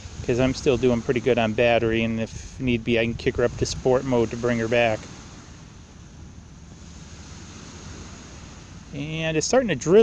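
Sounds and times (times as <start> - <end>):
soft outdoor hiss: 0.0 - 10.0.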